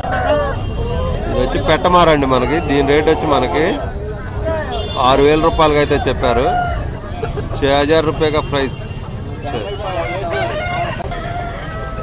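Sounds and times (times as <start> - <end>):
rooster crowing: 0.0 - 1.2, 6.1 - 7.0, 10.0 - 12.0.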